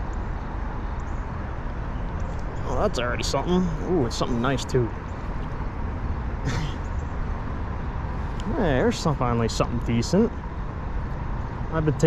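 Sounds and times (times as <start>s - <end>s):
low rumble of city traffic: 0.0s - 12.0s.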